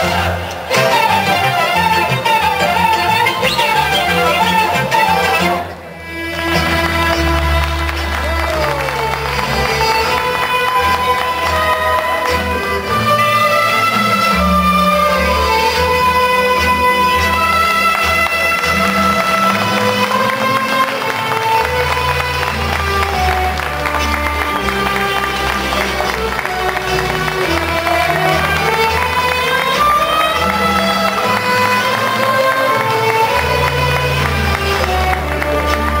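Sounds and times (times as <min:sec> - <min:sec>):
folk dance music: 0:00.0 - 0:36.0.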